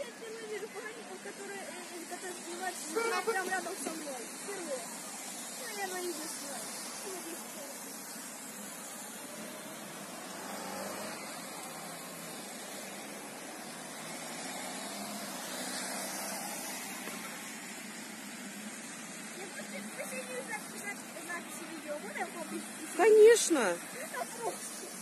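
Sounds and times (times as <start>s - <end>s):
car engines: 0.0s - 25.0s
tyres hissing on wet road: 0.0s - 25.0s.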